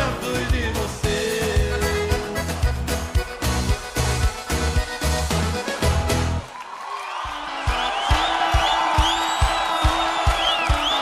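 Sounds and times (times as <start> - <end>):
crowd cheering and whistling: 6.4 - 11.0.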